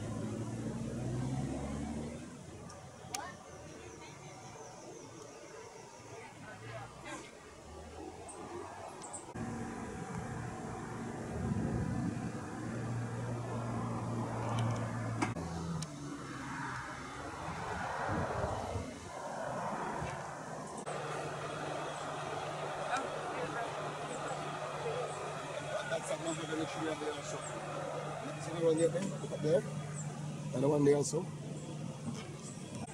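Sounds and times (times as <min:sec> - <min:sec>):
low engine hum: 0:00.0 - 0:04.6, 0:06.7 - 0:32.9
faint indistinct voices: 0:02.4 - 0:09.4, 0:20.8 - 0:32.9.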